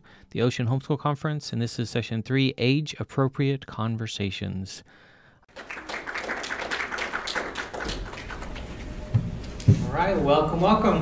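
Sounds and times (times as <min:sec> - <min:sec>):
small audience clapping: 0:05.5 - 0:09.0.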